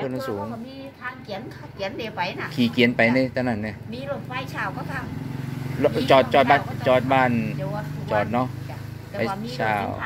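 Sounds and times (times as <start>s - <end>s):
woman talking: 0.0s - 3.2s, 3.9s - 5.1s
vehicle engine humming: 0.0s - 10.0s.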